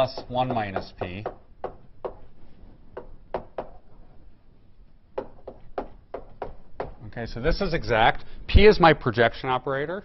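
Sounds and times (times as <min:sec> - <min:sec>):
chalk tapping on blackboard: 0:00.0 - 0:02.3, 0:02.9 - 0:03.8, 0:05.2 - 0:07.0.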